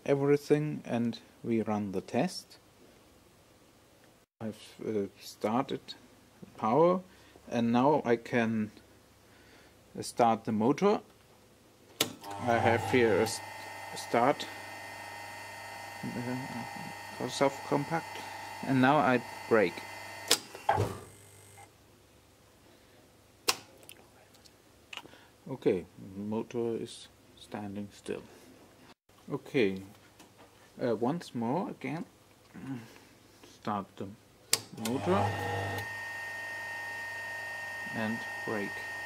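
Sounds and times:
electric motor hum: 12.3s - 21.7s, 34.8s - 39.0s.

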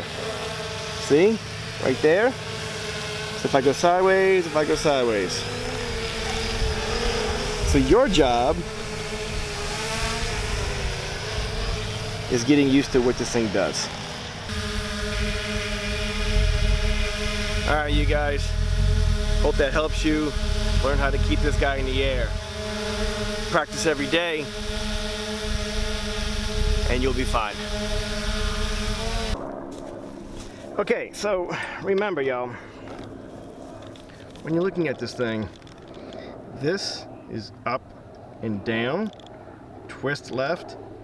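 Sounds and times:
quadcopter buzzing hum: 0.0s - 31.4s
wind rumbling on microphone: 5.7s - 12.4s, 14.3s - 23.4s, 24.6s - 30.8s.

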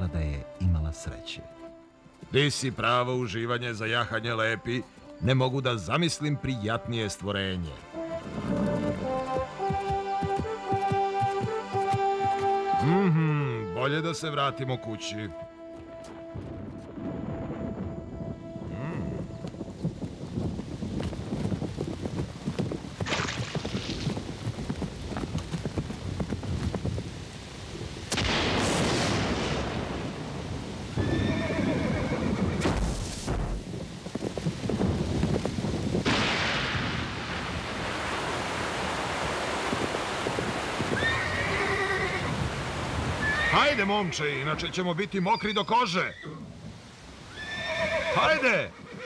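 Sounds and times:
horse hoofbeats: 6.0s - 13.7s, 15.3s - 27.4s
storm surges: 16.8s - 31.2s, 32.0s - 44.9s
heavy rain hissing: 20.3s - 44.9s
horse whinnying: 31.0s - 32.6s, 41.0s - 42.3s, 43.2s - 43.8s, 45.2s - 46.5s, 47.3s - 49.0s.

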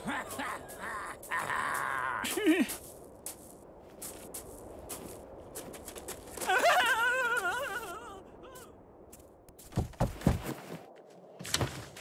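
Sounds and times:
faint scuffing and clicks: 2.7s - 6.5s.

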